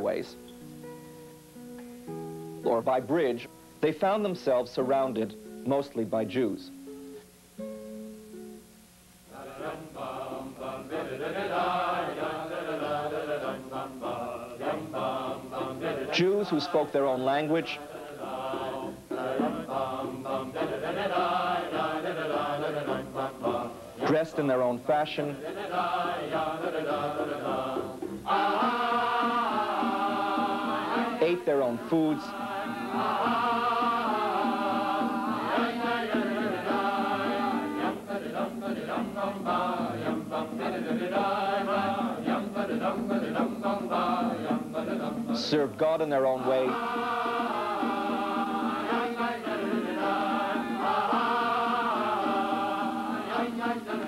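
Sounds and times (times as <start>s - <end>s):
chanted vocal music: 9.3s - 54.0s.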